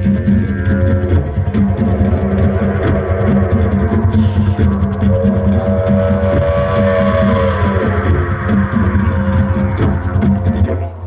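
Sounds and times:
didgeridoo low rhythmic drone: 0.0s - 11.0s
higher held tone: 0.0s - 11.0s.

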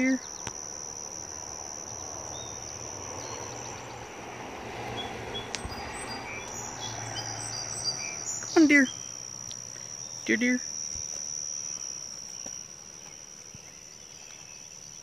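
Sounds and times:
insects trilling: 0.0s - 15.0s.

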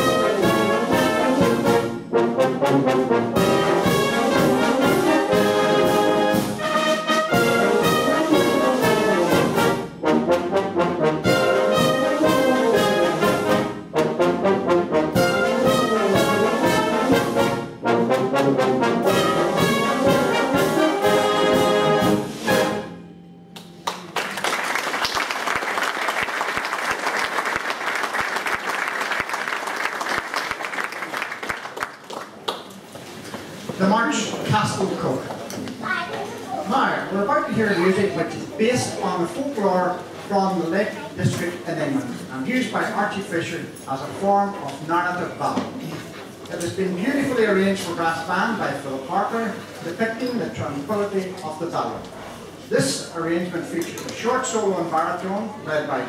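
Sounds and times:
brass band playing: 0.0s - 23.4s
audience applause: 23.8s - 32.9s.

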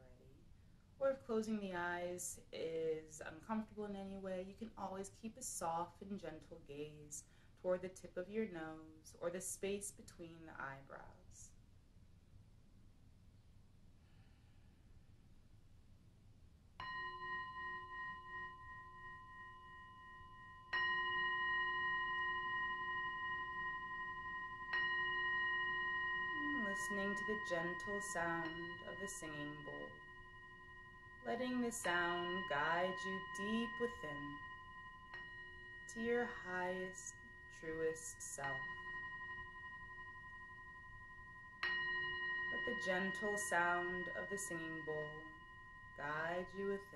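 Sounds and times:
singing bowl struck and ringing: 16.8s - 46.9s.

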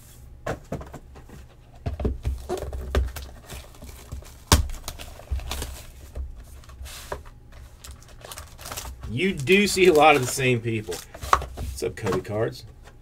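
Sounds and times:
cardboard boxes knocking on a mat: 0.4s - 3.2s.

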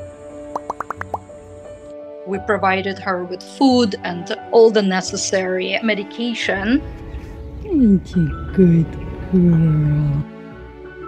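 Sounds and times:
playful background music: 0.2s - 11.0s
short rising bloop notes: 0.6s - 1.2s.

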